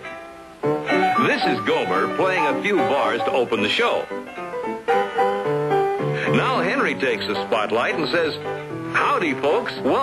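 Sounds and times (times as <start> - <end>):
piano notes and chords: 0.0 - 10.0.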